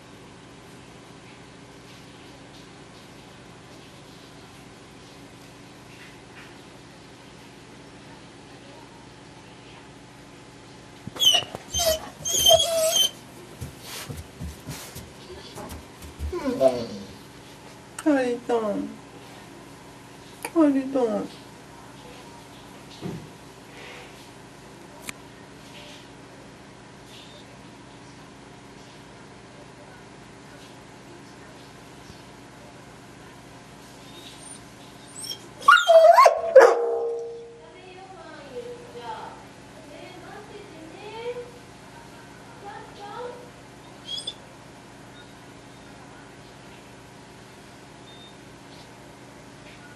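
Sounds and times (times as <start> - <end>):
dog whining: 11.2 - 13.2, 16.2 - 17.2, 34.1 - 37.4, 44.0 - 44.4.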